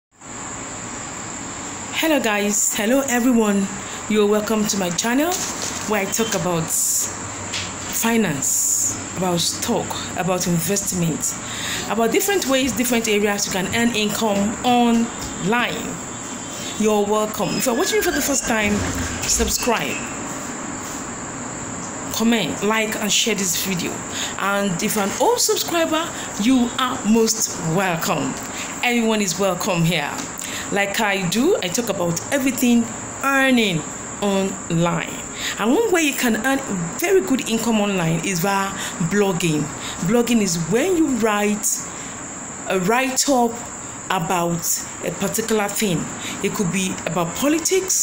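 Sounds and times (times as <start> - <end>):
steady high-pitched tone: 11.9 - 20.4
high-pitched whine: 12.0 - 22.6.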